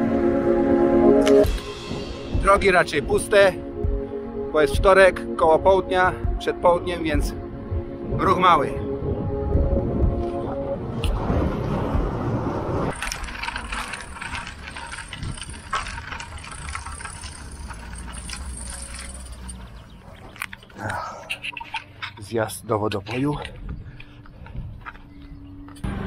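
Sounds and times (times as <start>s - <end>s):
faint background music: 1.3s - 11.4s
riding noise: 10.7s - 22.6s
bicycle handling clicks and rattles: 12.9s - 20.8s.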